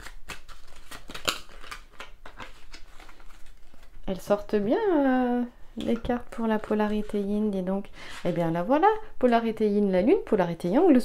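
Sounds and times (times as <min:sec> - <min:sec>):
cards shuffled by hand: 0:00.0 - 0:04.0.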